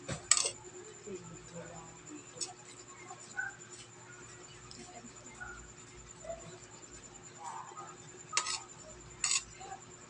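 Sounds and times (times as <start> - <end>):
metal spoon scraping ceramic plate: 8.4 - 9.5.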